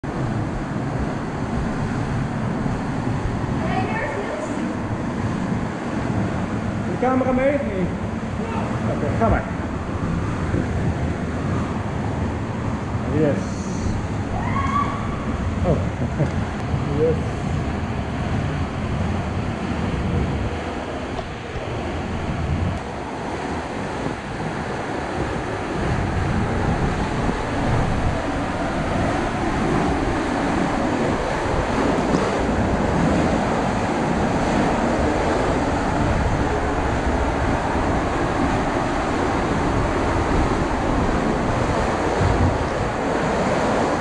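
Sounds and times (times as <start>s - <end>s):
water rushing and splashing: 0.0s - 44.0s.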